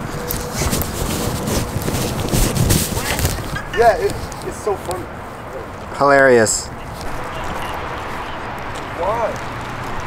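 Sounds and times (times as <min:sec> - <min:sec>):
wind rumbling on microphone: 0:00.0 - 0:06.0, 0:06.7 - 0:10.0
footsteps on asphalt: 0:00.0 - 0:10.0.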